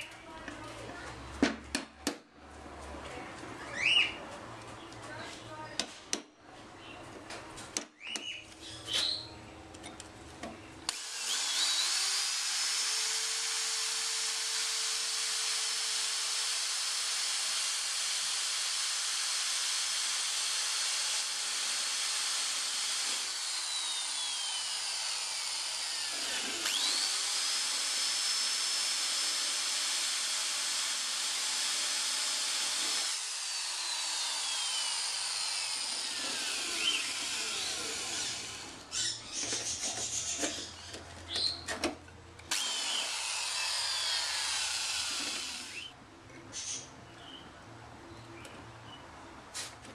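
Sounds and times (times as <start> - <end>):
electric drill whining: 10.9 - 39.2, 42.5 - 45.9.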